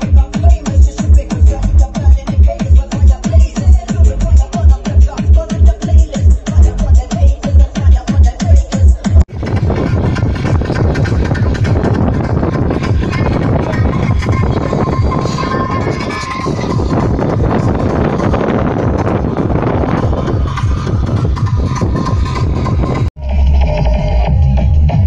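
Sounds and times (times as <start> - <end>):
loud distorted techno: 0.0 - 25.0.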